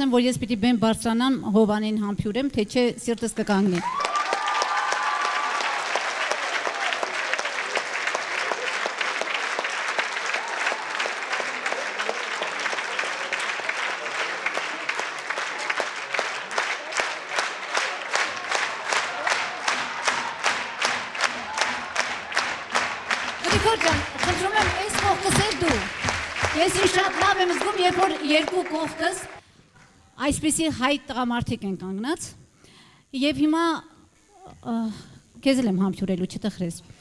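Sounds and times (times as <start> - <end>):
audience applauding: 3.7 - 29.4
rhythmic clapping in unison: 3.7 - 29.4.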